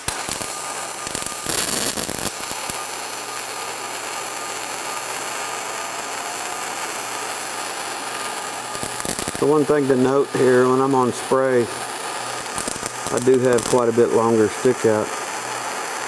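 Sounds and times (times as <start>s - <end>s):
welding arc hissing: 0.0s - 16.0s.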